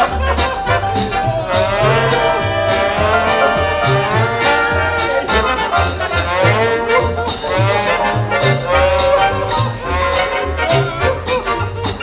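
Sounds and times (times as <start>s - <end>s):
swing band music with brass: 0.0s - 12.0s.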